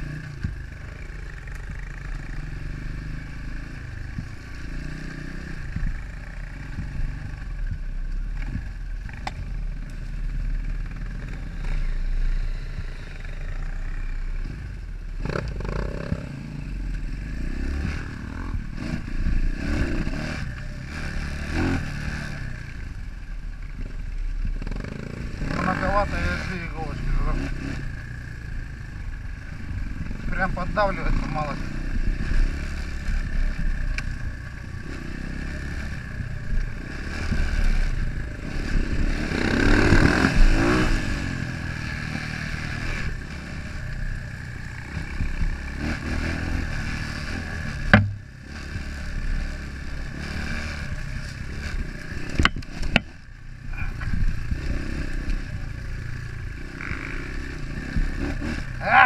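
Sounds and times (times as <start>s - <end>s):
dirt bike engine revving: 0.0s - 23.0s, 23.7s - 59.0s.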